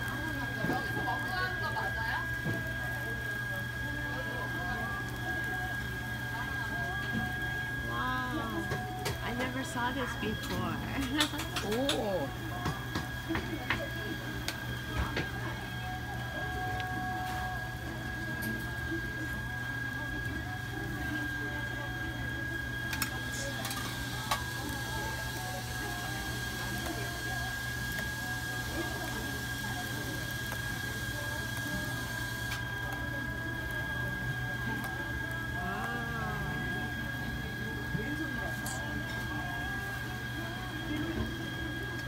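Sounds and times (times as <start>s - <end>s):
electrical hum with high whine: 0.0s - 42.0s
faint voices: 0.0s - 42.0s.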